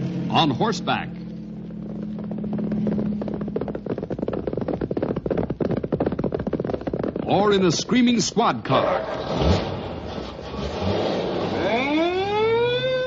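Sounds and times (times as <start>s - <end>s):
aircraft engine drone: 0.0s - 5.6s, 9.9s - 13.0s
galloping horse hoofbeats: 0.0s - 8.8s.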